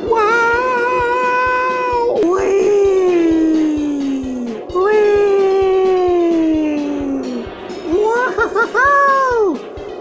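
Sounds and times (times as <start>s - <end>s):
person screaming: 0.0s - 7.3s.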